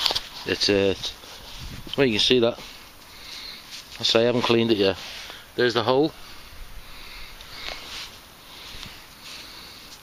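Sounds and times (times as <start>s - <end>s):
quiet breathing: 2.6s - 4.0s, 4.9s - 10.0s
person sniffing: 6.2s - 10.0s.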